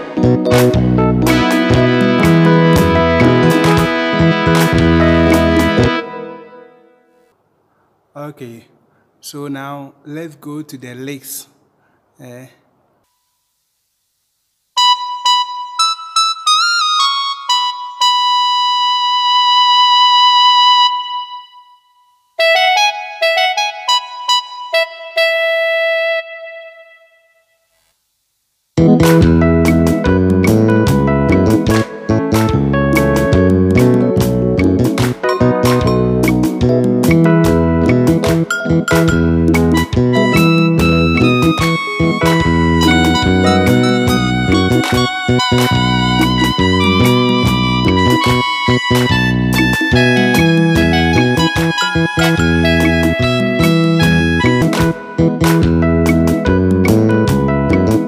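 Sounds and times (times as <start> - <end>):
electronic keyboard lead melody: 0.0 - 7.3, 14.8 - 27.9, 28.8 - 58.0
keyboard backing arrangement: 0.0 - 7.4, 14.8 - 27.2, 28.8 - 58.0.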